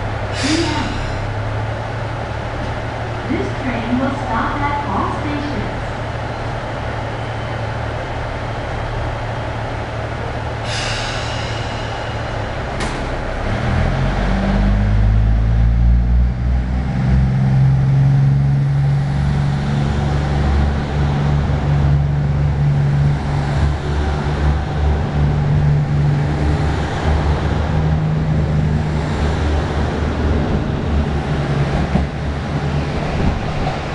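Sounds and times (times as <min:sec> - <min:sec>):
diesel train engine: 0:00.0 - 0:33.9.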